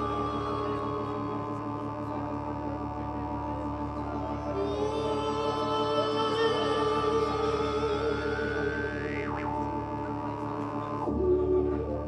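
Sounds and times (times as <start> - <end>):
man singing long notes: 0.0 - 12.0
modular synthesizer drone: 0.0 - 12.0.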